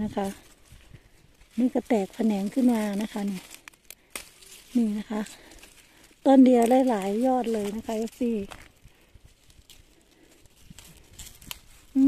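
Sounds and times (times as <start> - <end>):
hand brushing through leaves: 0.0 - 12.0.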